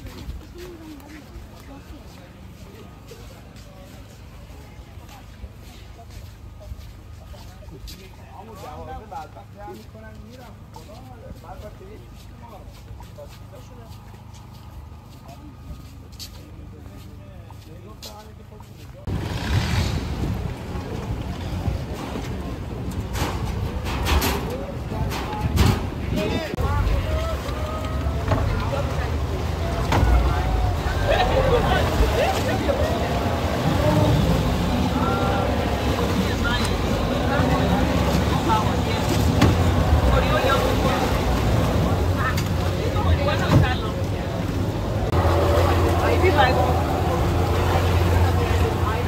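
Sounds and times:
boat engine rumble: 0.0s - 49.0s
people chattering: 0.0s - 49.0s.

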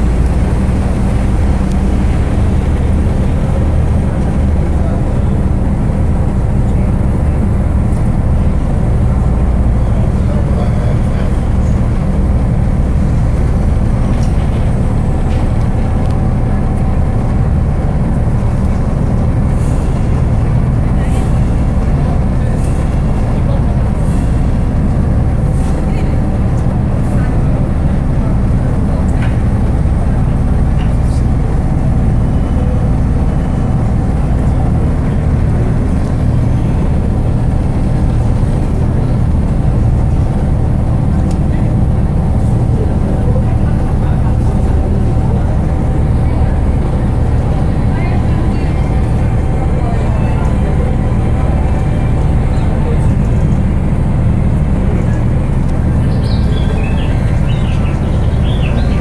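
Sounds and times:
boat engine low drone: 0.0s - 59.0s.

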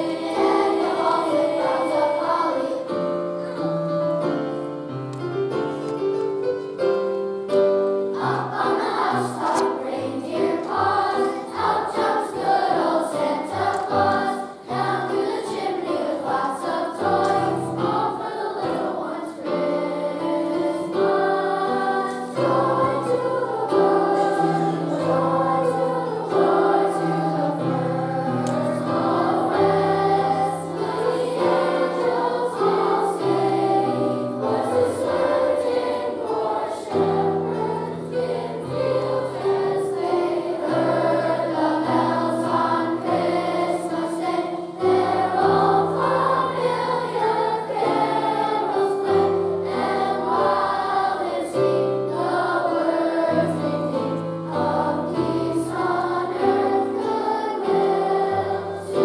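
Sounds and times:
children's choir singing: 0.0s - 59.0s.

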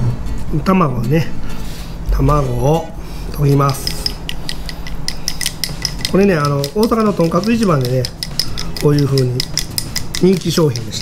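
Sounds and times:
chopsticks clicking on ceramic bowl: 3.6s - 11.0s.

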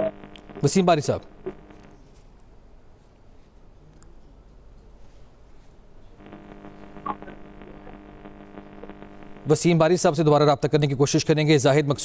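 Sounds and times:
faint electrical buzz on phone line: 0.0s - 2.4s, 6.1s - 10.7s.

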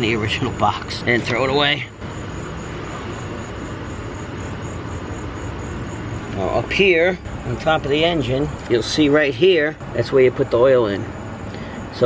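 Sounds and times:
background rumble and hiss: 0.0s - 12.0s.

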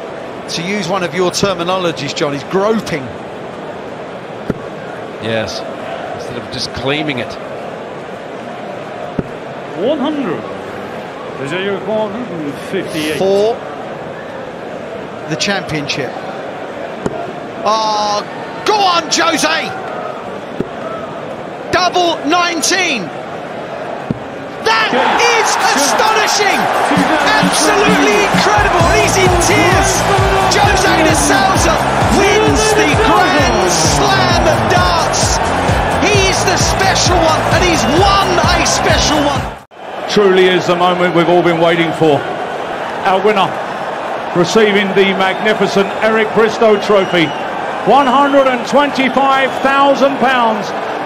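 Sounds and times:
man announcing: 11.4s - 13.5s, 24.6s - 42.2s
loud excited shouting: 24.6s - 41.0s.

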